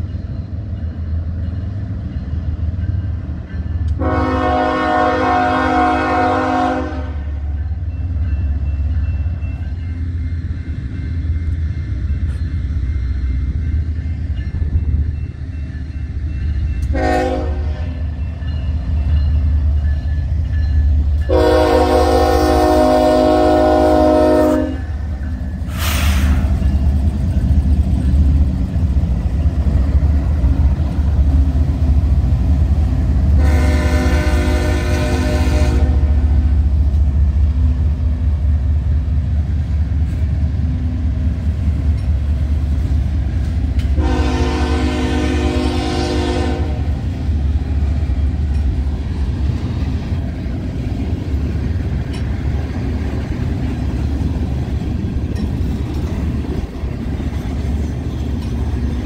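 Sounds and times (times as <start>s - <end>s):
train air horn blasts: 4.0s - 7.4s, 16.9s - 18.1s, 21.3s - 25.0s, 33.3s - 36.4s, 44.0s - 47.0s.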